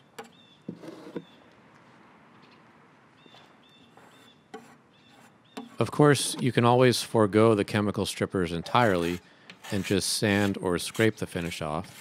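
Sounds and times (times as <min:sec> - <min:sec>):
faint outdoor background: 0:00.0 - 0:12.0
scraper blade scraping wood: 0:00.7 - 0:01.3, 0:04.0 - 0:06.5, 0:08.6 - 0:12.0
high bird chirps: 0:03.2 - 0:05.8.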